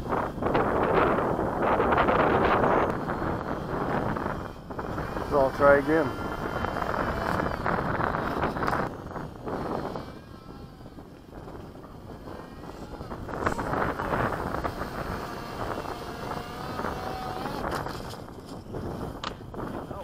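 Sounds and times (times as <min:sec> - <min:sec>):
drone motors whining: 0:00.0 - 0:20.0
wind buffeting microphone: 0:00.0 - 0:20.0.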